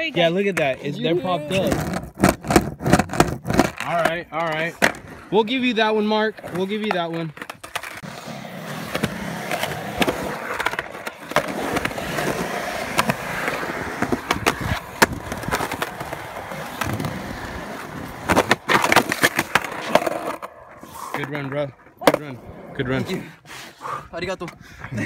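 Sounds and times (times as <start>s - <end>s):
skateboard wheels rolling on concrete: 0.0s - 25.0s
skateboard clattering: 0.2s - 22.4s.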